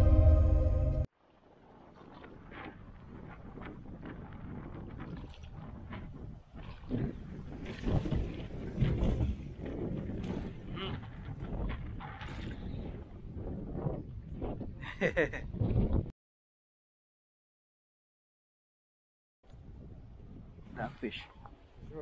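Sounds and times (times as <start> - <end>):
wind rumbling on microphone: 0.0 - 16.1, 19.5 - 22.0.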